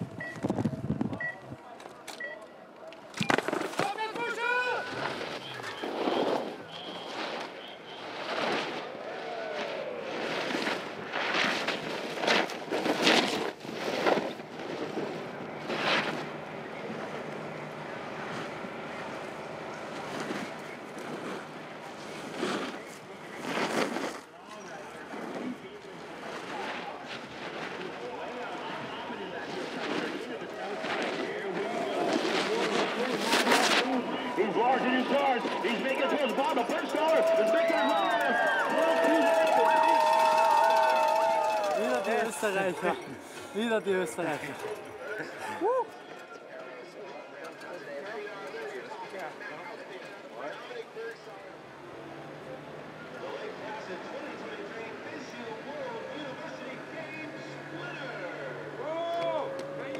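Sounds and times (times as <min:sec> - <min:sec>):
voices in background: 0:00.0 - 0:10.2, 0:14.1 - 0:59.9
snowboard edges carving on snow: 0:03.5 - 0:16.3, 0:19.9 - 0:36.1.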